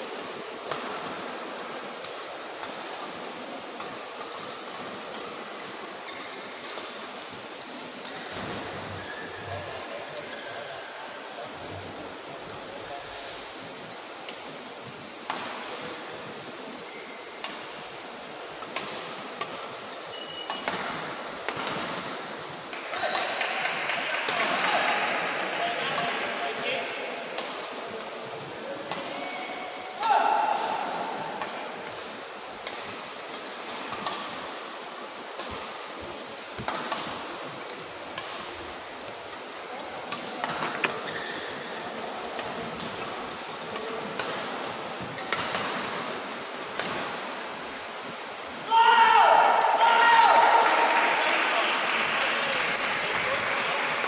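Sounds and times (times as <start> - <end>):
people talking: 22.8 - 31.7, 48.7 - 54.0.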